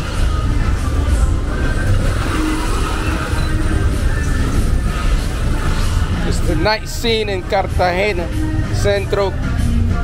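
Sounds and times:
cars passing slowly: 0:00.0 - 0:10.0.

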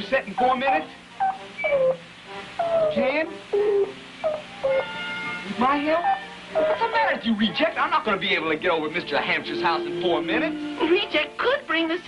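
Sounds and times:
electronic beeping tones sliding down: 0:01.2 - 0:02.0.

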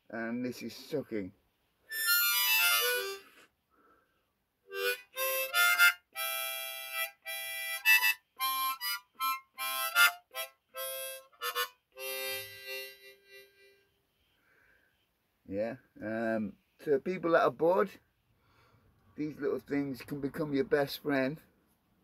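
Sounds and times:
harmonica notes and chords: 0:01.9 - 0:03.5, 0:04.7 - 0:14.8.

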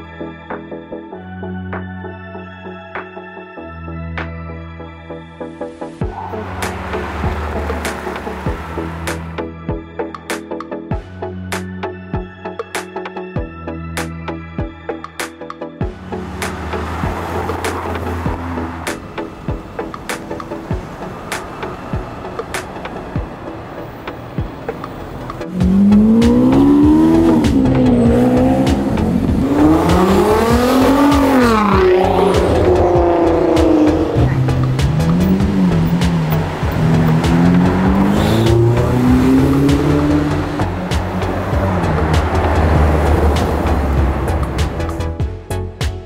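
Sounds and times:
car engine revving: 0:06.0 - 0:09.5, 0:15.9 - 0:45.2.

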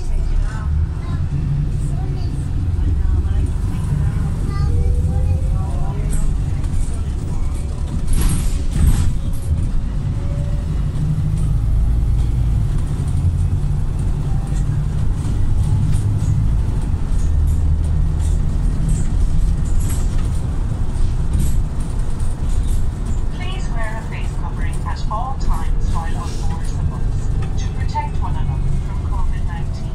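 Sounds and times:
bus engine drone: 0:00.0 - 0:29.9.

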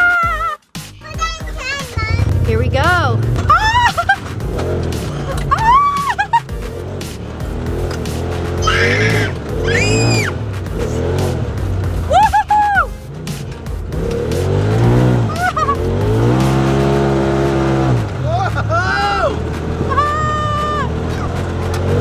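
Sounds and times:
people screaming and yelling: 0:00.0 - 0:00.6, 0:03.4 - 0:04.3, 0:05.2 - 0:06.4, 0:08.6 - 0:10.4, 0:12.0 - 0:12.9, 0:18.2 - 0:21.7
vehicle engine running: 0:00.9 - 0:22.0.

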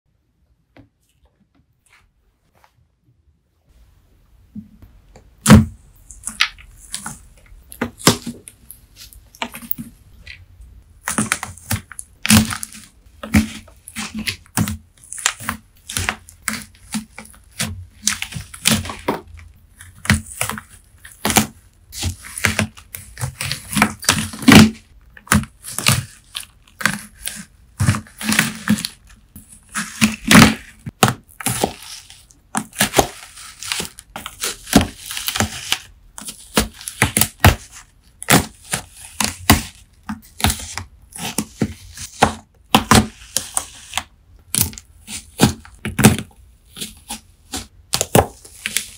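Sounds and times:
sponge cracking and crunching: 0:11.0 - 0:48.9.

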